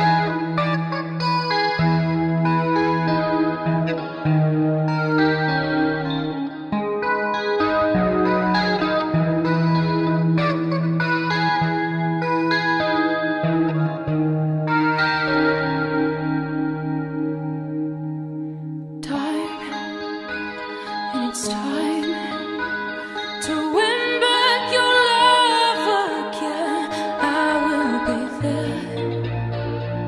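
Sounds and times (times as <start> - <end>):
electric guitar with echo: 0.0 - 30.0.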